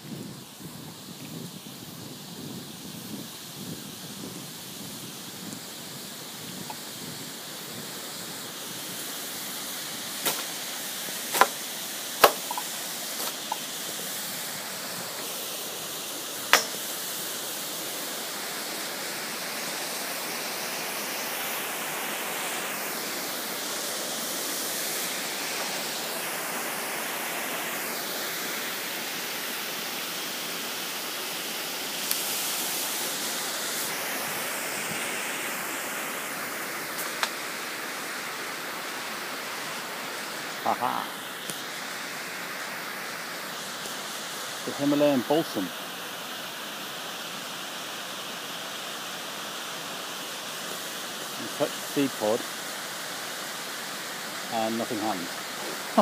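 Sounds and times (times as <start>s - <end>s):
river water flowing over rocks: 0.2s - 56.0s.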